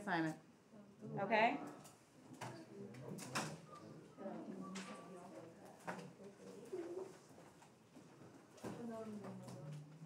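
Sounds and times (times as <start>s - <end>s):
faint murmur of voice: 0.7s - 7.6s.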